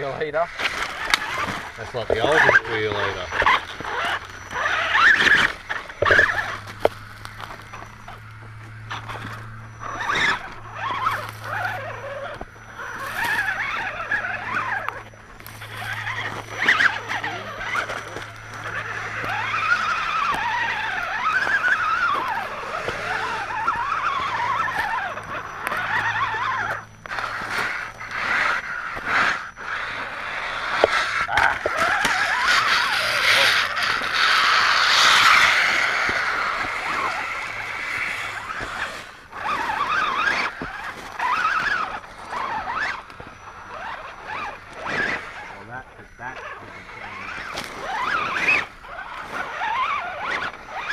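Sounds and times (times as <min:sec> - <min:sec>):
electric motor and gear whine: 0:00.0 - 0:50.9
low hum: 0:00.0 - 0:50.9.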